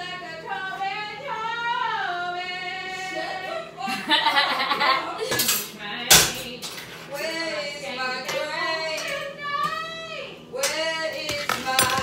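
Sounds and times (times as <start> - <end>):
metal pan and utensils clanking: 5.2 - 6.9, 11.3 - 12.0.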